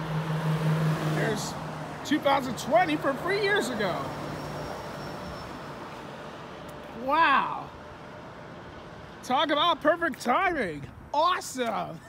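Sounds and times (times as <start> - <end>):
bus driving past: 0.0 - 9.3.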